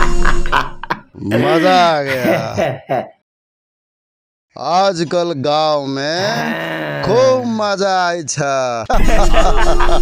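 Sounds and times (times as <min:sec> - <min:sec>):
man speaking: 0:01.2 - 0:02.8, 0:04.6 - 0:08.9.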